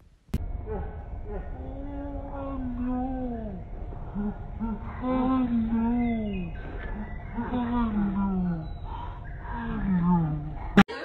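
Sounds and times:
dog howling: 0.7 - 10.8.

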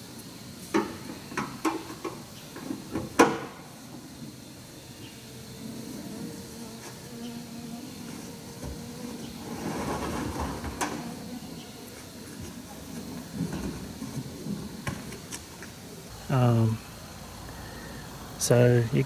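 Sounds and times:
faint buzzing hum: 0.0 - 19.0.

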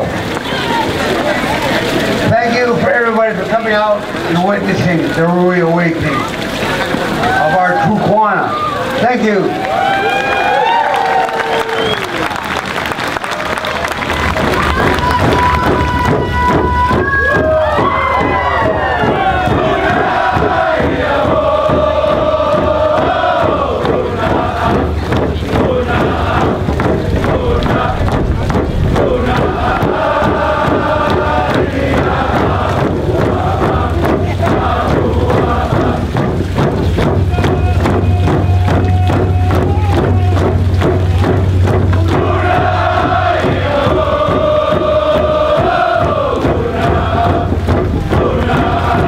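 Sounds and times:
crowd voices calling out: 0.0 - 2.8, 6.0 - 12.4, 13.5 - 49.0
hand drums beaten in fast rhythm: 14.2 - 49.0.

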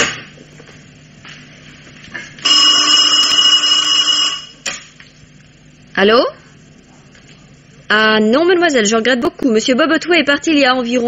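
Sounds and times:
telephone bell ringing: 2.4 - 4.6.

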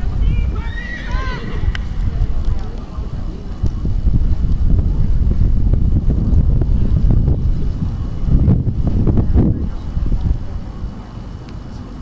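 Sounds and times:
wind on microphone: 0.0 - 12.0
horse whinnying: 0.6 - 1.8.

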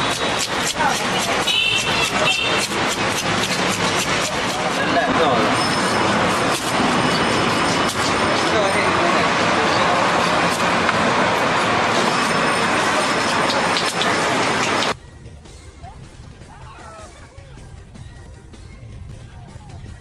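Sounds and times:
hubbub of indistinct voices: 0.0 - 15.0, 15.8 - 18.0.

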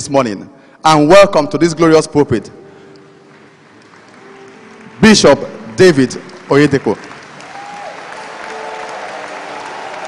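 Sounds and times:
congregation applauding: 3.0 - 10.0.

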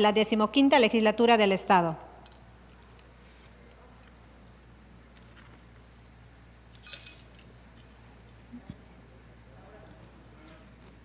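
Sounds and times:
low steady hum: 0.0 - 11.0
sharp clink: 6.8 - 7.3.

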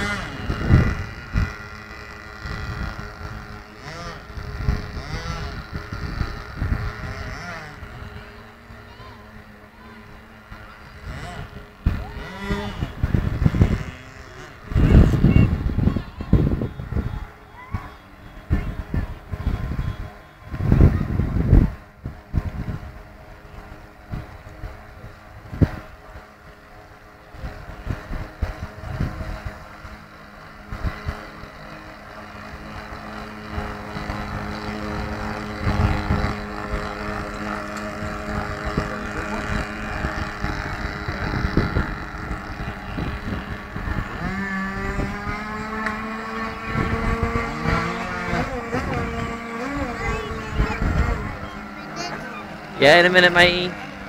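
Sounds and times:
wind on microphone: 0.0 - 9.6, 10.2 - 53.8
model boat motor humming: 0.0 - 54.0.

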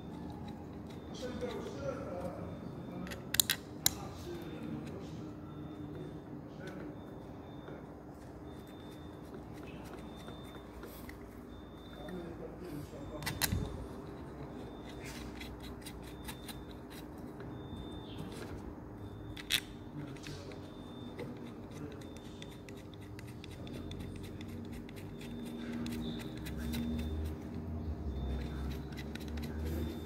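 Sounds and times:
small metal parts clicking: 3.0 - 4.0, 19.2 - 27.5, 28.3 - 30.0.

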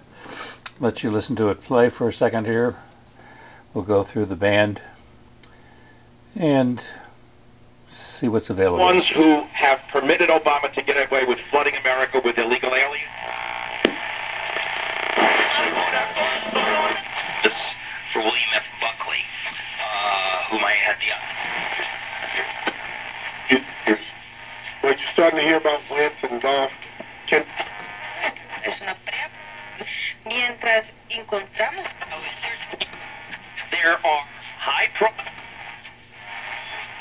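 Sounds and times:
steady low hum: 0.0 - 37.0
radio static: 8.6 - 37.0
radio station music: 8.6 - 37.0
radio whistles between stations: 11.5 - 30.8, 31.6 - 37.0.

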